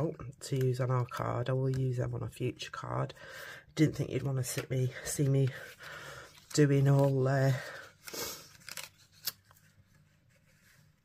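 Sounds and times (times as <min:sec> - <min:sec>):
paper rustling: 0:04.0 - 0:11.0.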